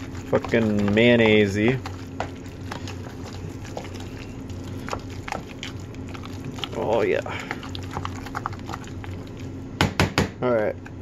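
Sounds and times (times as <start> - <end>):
wet squelching of kneaded food: 0.0 - 9.8
steady low hum: 0.0 - 11.0.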